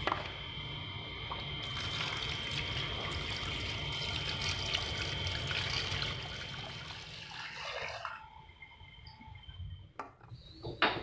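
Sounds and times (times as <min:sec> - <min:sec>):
tap water running into a pot: 0:01.6 - 0:08.3
water pouring out of a pot: 0:01.6 - 0:08.3.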